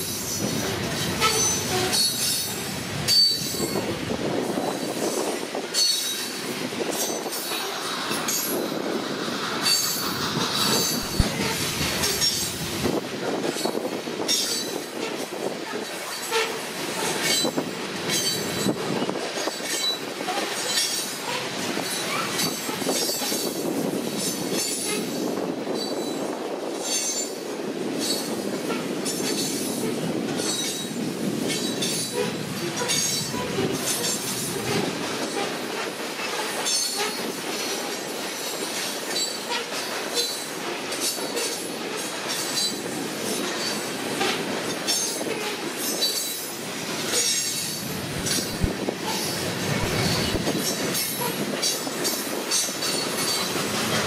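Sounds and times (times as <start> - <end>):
train wheels rumbling on rails: 0.0 - 54.0
wheels clacking over rail joints: 0.0 - 54.0
high wheel squeal: 4.5 - 12.6.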